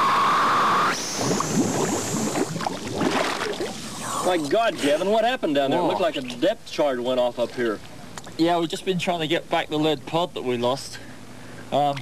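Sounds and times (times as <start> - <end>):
steady underwater hiss: 0.0 - 8.8
water rushing and bubbling: 0.9 - 4.7.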